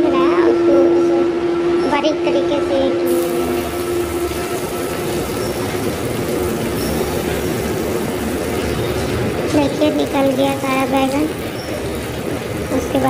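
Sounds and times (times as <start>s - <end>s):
chillies sizzling in hot oil: 3.1s - 13.0s.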